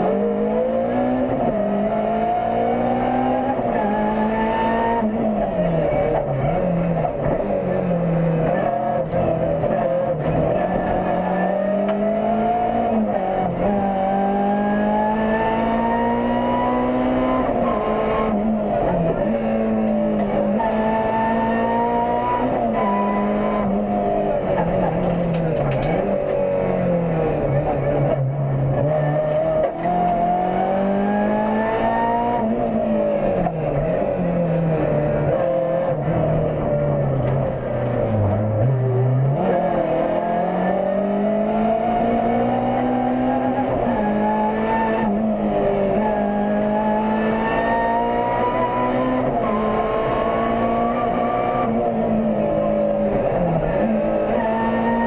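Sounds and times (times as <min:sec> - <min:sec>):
car engine revving: 0:00.0 - 0:55.0.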